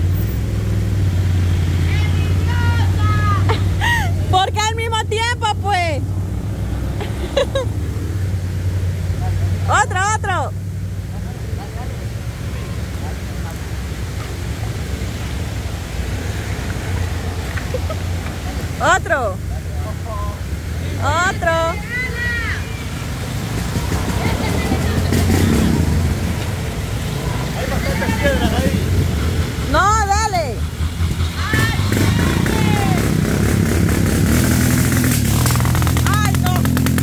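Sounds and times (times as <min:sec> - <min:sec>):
people shouting: 0:01.8 - 0:03.5, 0:21.0 - 0:23.2, 0:27.0 - 0:28.7, 0:31.2 - 0:33.2
motorcycle engines idling: 0:07.0 - 0:37.0.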